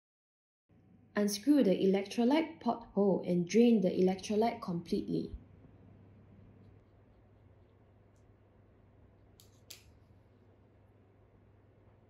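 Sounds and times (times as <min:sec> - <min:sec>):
faint low hum: 0:00.7 - 0:12.0.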